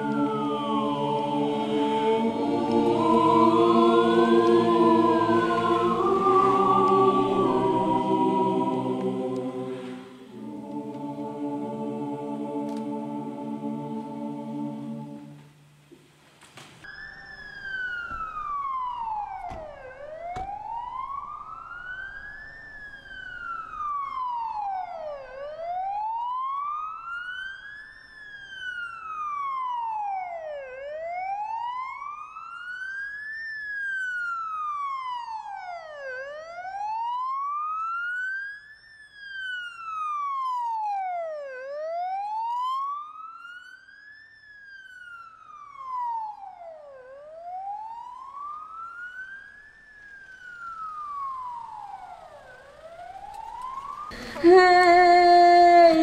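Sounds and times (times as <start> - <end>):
wailing vehicle siren: 0.0 - 15.4, 16.8 - 56.0.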